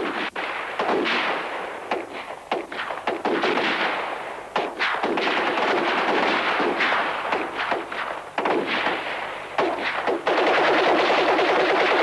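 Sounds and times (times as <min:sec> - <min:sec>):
rifle shots with echo: 0:00.0 - 0:12.0.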